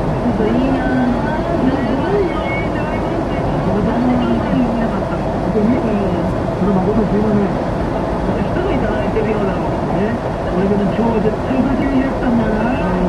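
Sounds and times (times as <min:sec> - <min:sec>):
car road and engine noise: 0:00.0 - 0:13.0.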